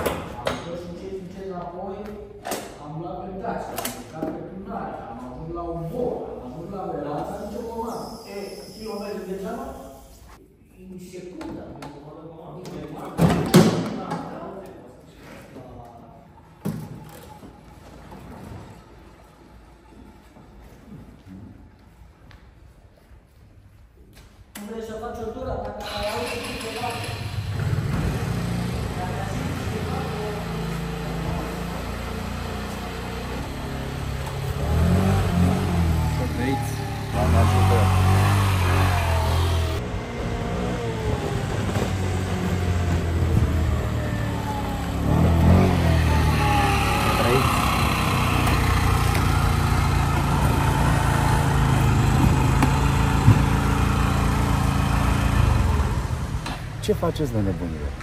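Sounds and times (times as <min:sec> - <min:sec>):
scooter engine revving: 0:25.8 - 0:56.9.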